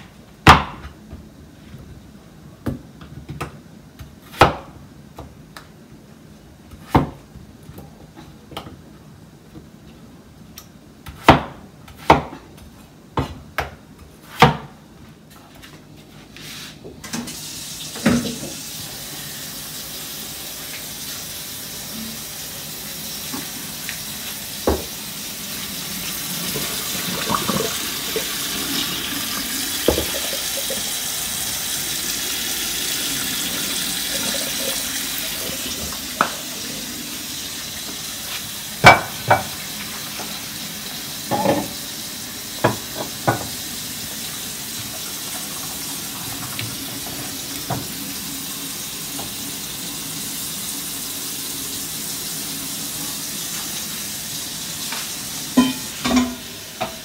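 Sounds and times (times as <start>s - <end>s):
water pouring: 25.5s - 37.8s
cookware knocking and clattering: 55.6s - 57.0s.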